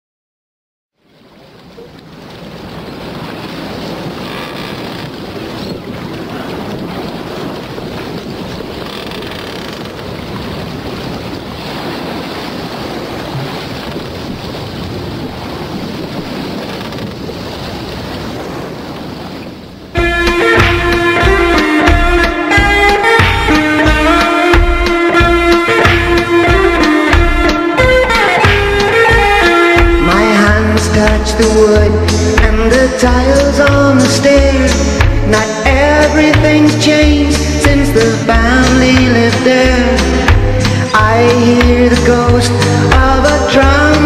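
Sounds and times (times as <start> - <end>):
sea surf: 1.0 - 44.0
wind rushing: 2.6 - 27.9.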